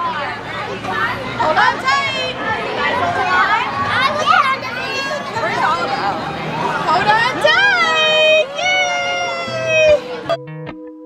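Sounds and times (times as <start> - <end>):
background chatter: 0.0 - 10.4
children talking and calling out: 0.0 - 10.4.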